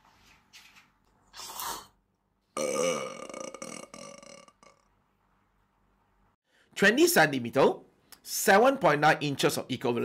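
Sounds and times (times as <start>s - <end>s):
long loud burp: 2.6s - 4.9s.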